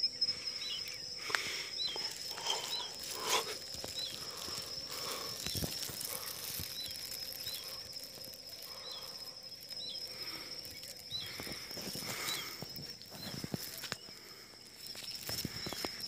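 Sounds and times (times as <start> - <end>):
high insect drone: 0.0 - 16.0
leaves and twigs rustling: 0.0 - 16.0.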